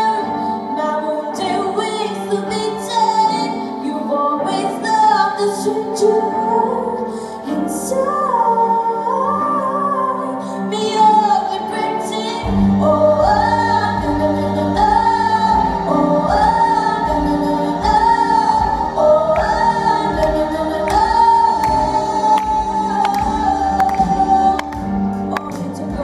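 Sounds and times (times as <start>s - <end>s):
choir-like female vocals: 0.0s - 26.0s.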